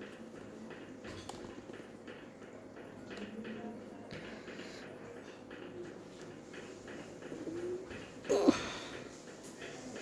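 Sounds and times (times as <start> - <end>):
bird cooing: 7.4 - 8.7.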